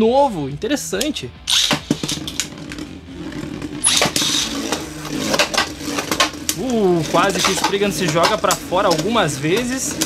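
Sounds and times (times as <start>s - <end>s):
spinning top landing clatter: 1.5s - 10.0s
spinning top whirring: 1.5s - 10.0s.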